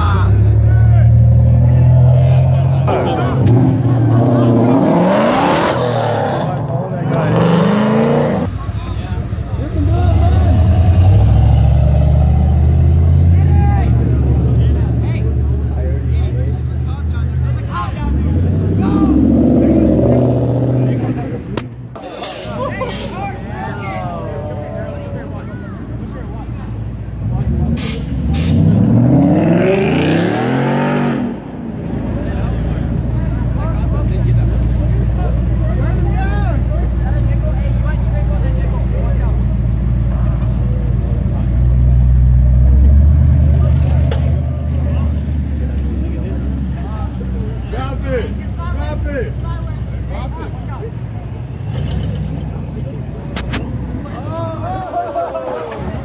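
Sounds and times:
cars rolling past rumbling: 0.0 - 56.0
crowd chatter: 0.0 - 56.0
car engine revving hard: 2.9 - 8.5, 27.6 - 31.4.

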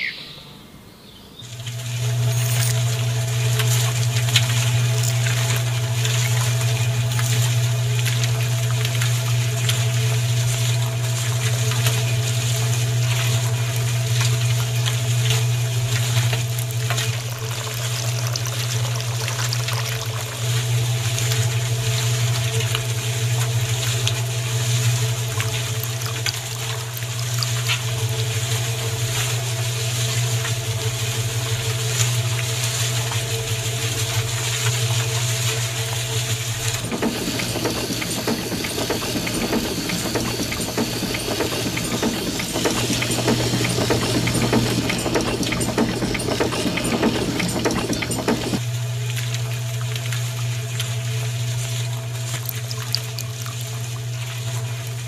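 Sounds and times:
mechanical noise: 36.6 - 48.6.

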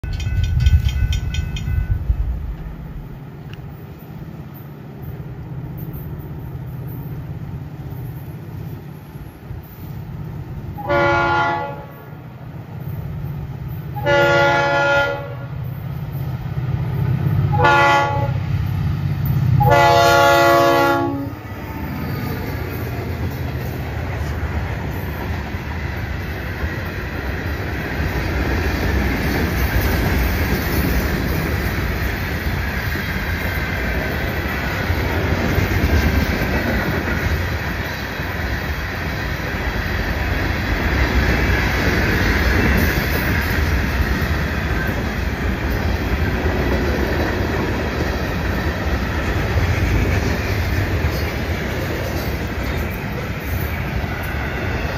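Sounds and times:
train wheels on rails: 0.0 - 54.9
locomotive air horn: 10.8 - 12.1, 14.0 - 15.6, 17.5 - 18.4, 19.6 - 22.1.

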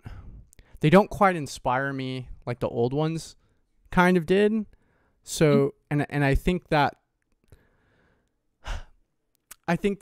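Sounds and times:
man breathing into microphone: 0.0 - 0.8, 7.5 - 9.0.

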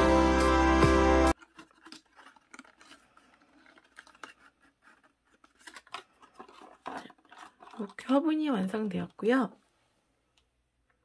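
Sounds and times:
cardstock rustling and crinkling: 1.3 - 9.3.

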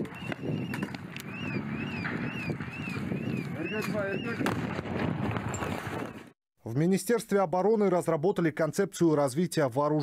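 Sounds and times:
siren wailing: 0.0 - 4.5.

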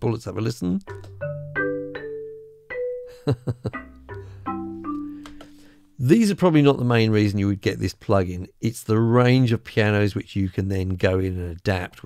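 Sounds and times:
marimba notes: 0.9 - 5.8.

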